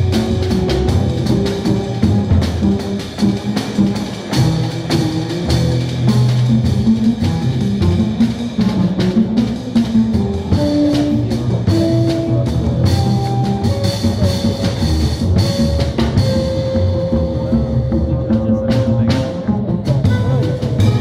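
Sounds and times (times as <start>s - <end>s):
drums ticking on cymbals: 0.0s - 21.0s
jazz trio playing: 0.0s - 21.0s.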